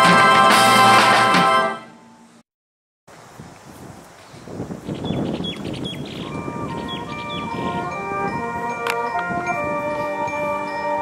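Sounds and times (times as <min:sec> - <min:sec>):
brass band playing: 0:00.0 - 0:02.0, 0:06.3 - 0:11.0
rustling noise: 0:03.1 - 0:04.9.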